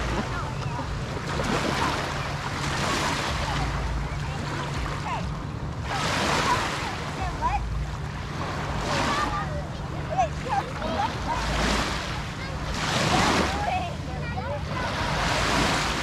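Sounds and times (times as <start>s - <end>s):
lake waves lapping on shore: 0.0s - 16.0s.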